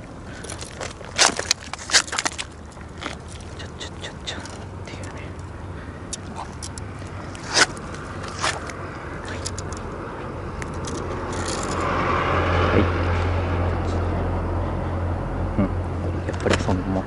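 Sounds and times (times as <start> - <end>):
engine running: 0.0 - 17.0.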